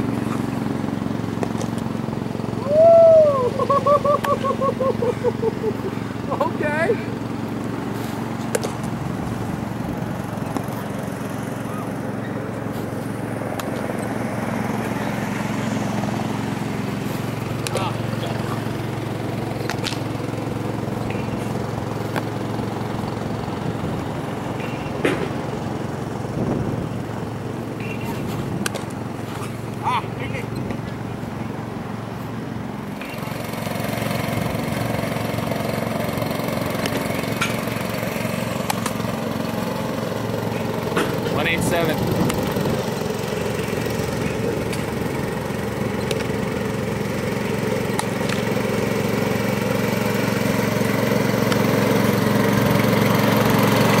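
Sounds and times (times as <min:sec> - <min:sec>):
small engine running: 0:00.0 - 0:54.0.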